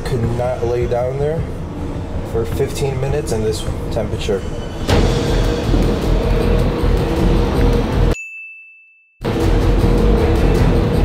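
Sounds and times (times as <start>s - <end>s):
loud steady humming noise: 0.0s - 8.2s
high ding: 8.1s - 9.2s.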